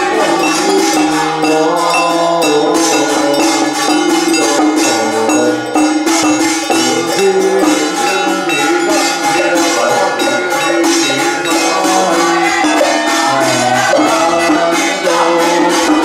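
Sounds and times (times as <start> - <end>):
ritual chanting: 0.0 - 16.0
struck bells and percussion: 0.0 - 16.0.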